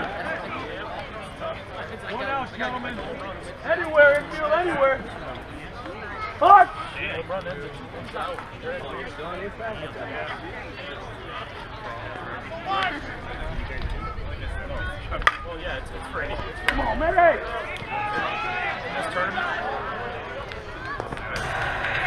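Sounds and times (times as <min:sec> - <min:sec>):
men calling out and chatting: 0:00.0 - 0:22.0.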